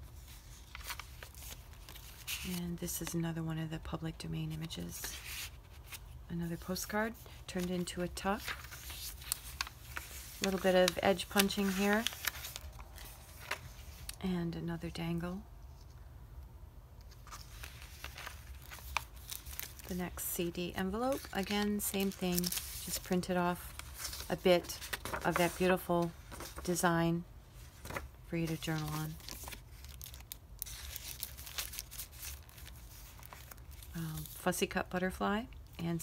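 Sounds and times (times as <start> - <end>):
paper pages rustling: 0.2 - 2.6, 5.0 - 14.2, 17.1 - 20.2, 20.9 - 26.9, 27.5 - 34.5.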